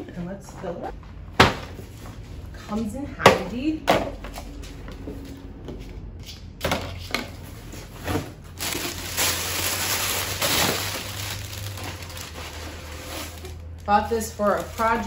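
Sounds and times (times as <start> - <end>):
plastic packaging crinkling: 8.4 - 15.0.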